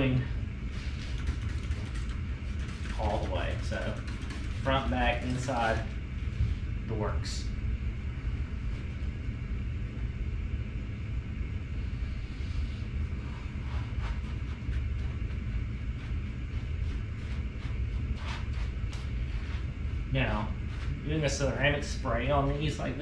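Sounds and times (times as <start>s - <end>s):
steady low rumble: 0.0s - 23.0s
cloth rubbing on wheel: 13.1s - 21.1s.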